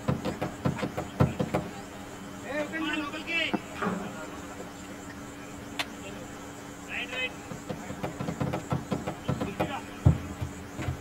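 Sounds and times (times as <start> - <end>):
people talking indistinctly: 0.2 - 10.5
dull thump: 7.5 - 11.0.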